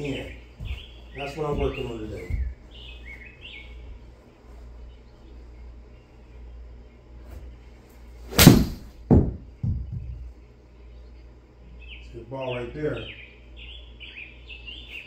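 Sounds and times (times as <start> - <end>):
golf club striking ball: 8.3 - 9.4
ball knocking: 8.4 - 10.3.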